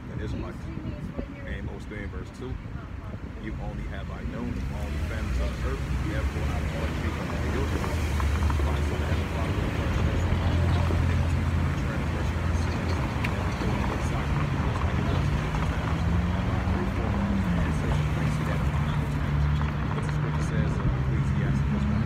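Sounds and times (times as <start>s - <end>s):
street traffic: 0.0s - 22.0s
vehicle engine running close: 0.0s - 22.0s.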